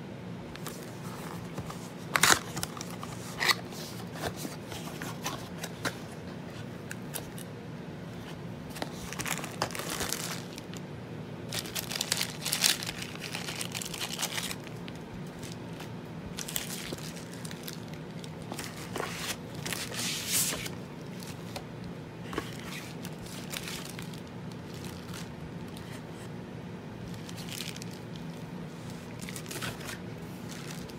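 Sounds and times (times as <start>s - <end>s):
plastic packing crinkling: 0.6s - 6.0s, 8.7s - 10.8s, 11.5s - 26.3s, 27.0s - 30.9s.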